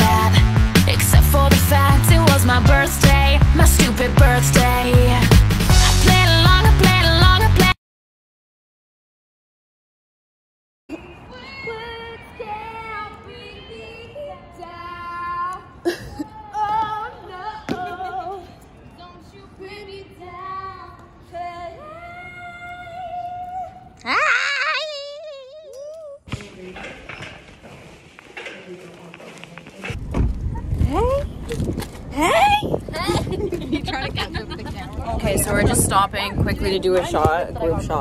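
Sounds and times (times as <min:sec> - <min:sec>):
young women squealing: 0:24.0 - 0:26.2
wind buffeting microphone: 0:29.9 - 0:38.0.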